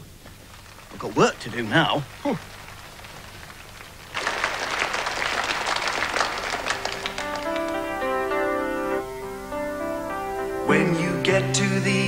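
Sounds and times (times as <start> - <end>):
audience applause: 0.0 - 9.1
instrumental song introduction: 7.1 - 12.0.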